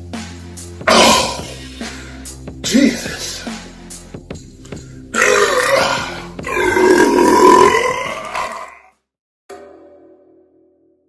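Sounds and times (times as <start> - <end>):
man imitating a roar: 0.9 - 1.6, 5.2 - 8.9.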